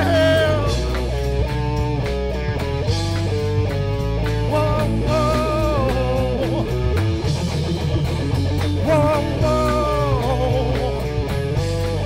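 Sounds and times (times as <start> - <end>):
person singing: 0.0 - 1.1, 4.4 - 7.4, 8.6 - 12.0
bass guitar: 0.0 - 12.0
drum kit: 0.0 - 12.0
electric guitar: 0.0 - 12.0.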